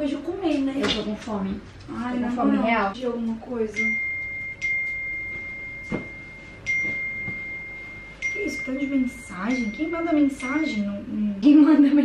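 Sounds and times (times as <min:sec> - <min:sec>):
phone notification chime: 0:03.7 - 0:11.0.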